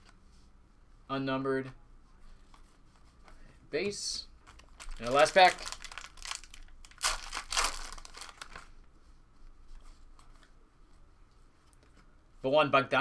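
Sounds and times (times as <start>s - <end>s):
foil wrapper tearing and crinkling: 4.5s - 8.6s.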